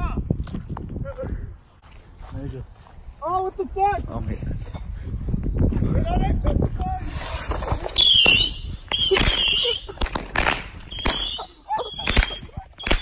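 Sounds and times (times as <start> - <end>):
firework whistles: 7.0 - 10.0, 10.9 - 13.0
firework bangs and pops: 7.4 - 13.0.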